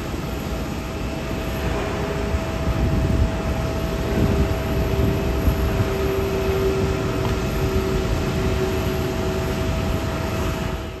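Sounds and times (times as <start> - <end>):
jet engines whining: 0.0 - 11.0.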